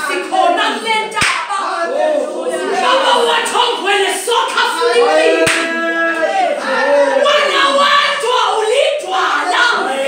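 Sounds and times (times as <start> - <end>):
voices of a gathering: 0.0 - 10.0
hand clapping: 1.2 - 1.5, 5.4 - 6.2.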